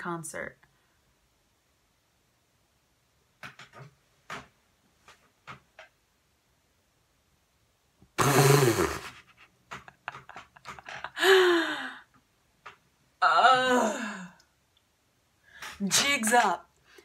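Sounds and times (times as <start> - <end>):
woman laughing: 9.7 - 12.0
woman wavering cry: 13.2 - 14.4.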